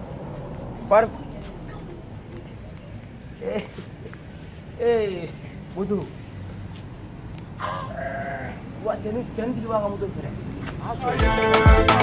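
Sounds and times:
animal bleating: 0:07.6 - 0:08.6.

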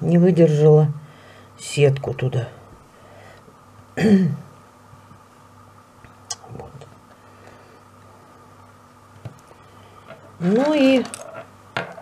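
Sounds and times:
faint steady hum: 0:00.0 - 0:12.0
woman clearing her throat: 0:04.0 - 0:04.5.

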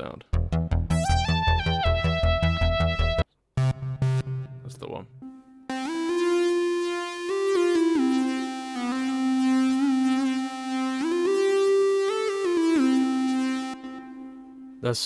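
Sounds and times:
square-wave synthesizer melody: 0:00.4 - 0:14.8.

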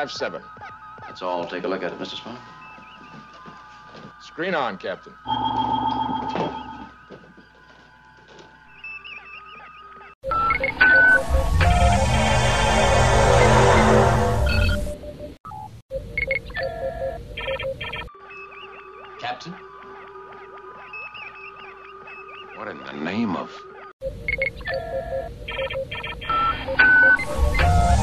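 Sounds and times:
electronic beeps and chirps: 0:08.7 - 0:19.6, 0:24.0 - 0:28.0.

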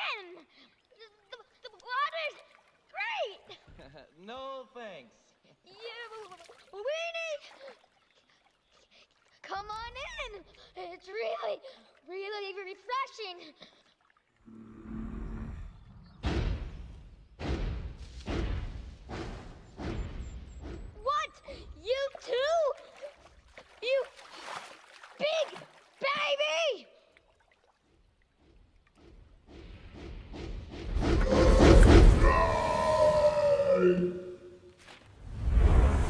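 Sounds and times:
sustained soundtrack tones: 0:14.4 - 0:16.3.

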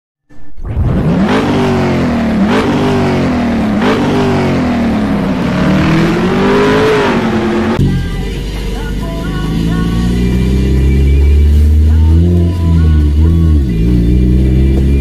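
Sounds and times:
car engine revving: 0:00.4 - 0:15.0.

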